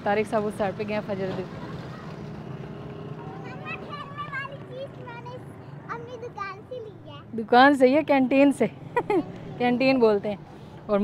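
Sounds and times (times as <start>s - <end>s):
vehicle engine running: 0.0s - 7.0s.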